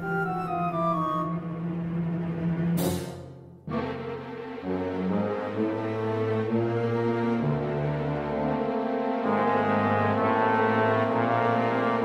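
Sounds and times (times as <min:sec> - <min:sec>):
orchestral chord: 0:02.8 - 0:12.0.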